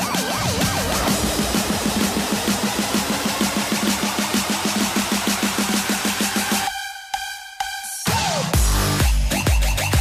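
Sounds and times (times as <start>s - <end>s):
repeated synth notes dance music: 0.0s - 10.0s.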